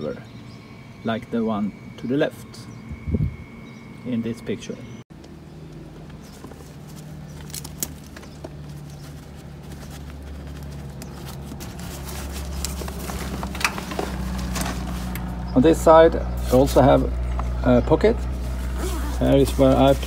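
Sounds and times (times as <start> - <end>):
low mechanical hum: 0.0 - 20.0
backpack buckle clicks and rustles: 6.8 - 9.2, 9.8 - 15.2.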